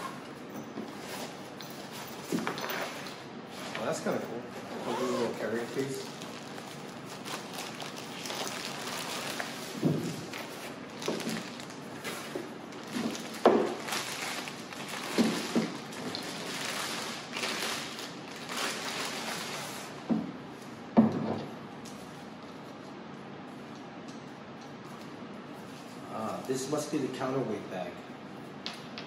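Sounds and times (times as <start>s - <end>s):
plastic wrapping crinkling: 3.8s - 20.0s.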